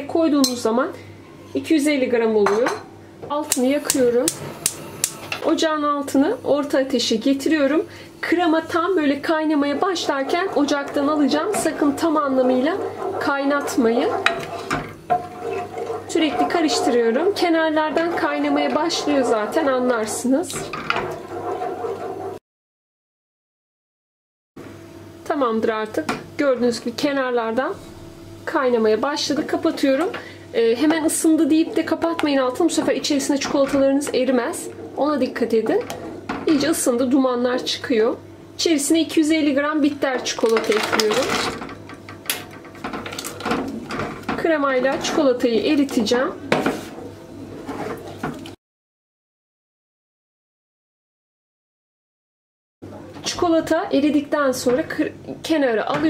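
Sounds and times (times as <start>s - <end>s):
liquid sloshing in a saucepan: 7.6s - 22.4s, 29.3s - 37.6s.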